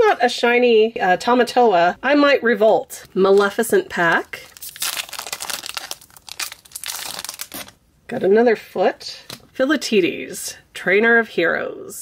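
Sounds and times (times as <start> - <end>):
foil wrapper tearing and crinkling: 4.4 - 7.8.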